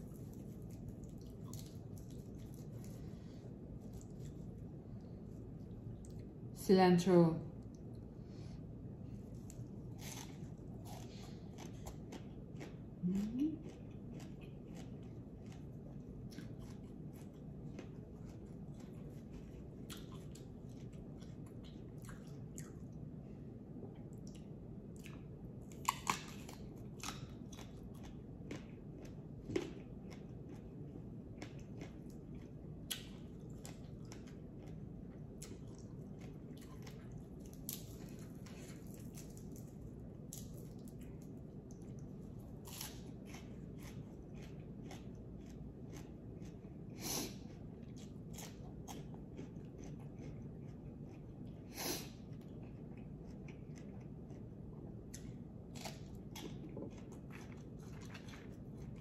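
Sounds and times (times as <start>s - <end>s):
chewing crunchy vegetables: 0.0s - 6.4s, 9.1s - 59.0s.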